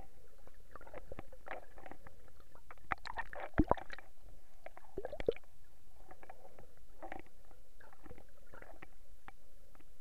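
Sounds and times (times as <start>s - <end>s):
muffled underwater rumble: 0.0s - 10.0s
underwater clicks and gurgles: 0.0s - 10.0s.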